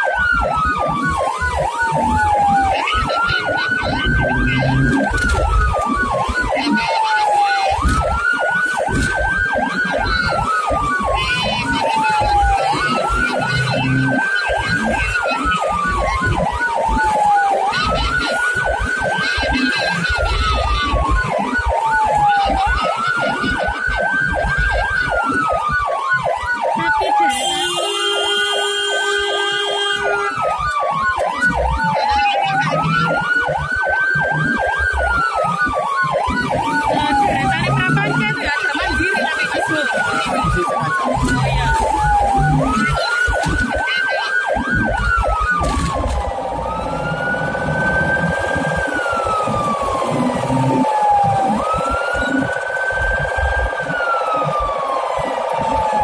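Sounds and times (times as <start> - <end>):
ambulance siren wailing: 0.0 - 56.0
vehicle horn: 27.3 - 30.3.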